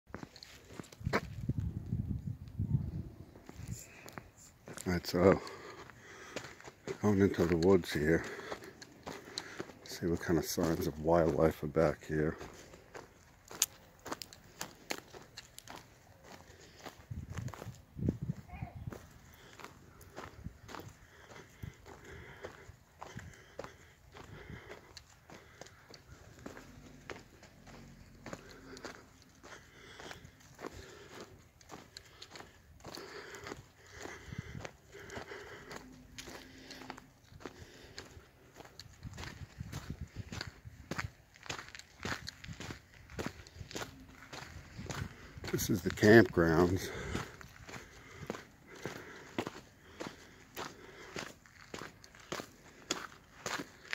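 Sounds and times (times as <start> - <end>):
footsteps crunching on dry leaves: 4.7 - 17.9, 18.9 - 53.9.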